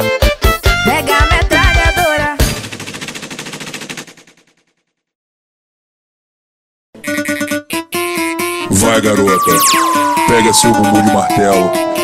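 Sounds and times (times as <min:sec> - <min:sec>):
machine-gun rattle: 0:02.6 - 0:04.8
song: 0:08.7 - 0:12.0.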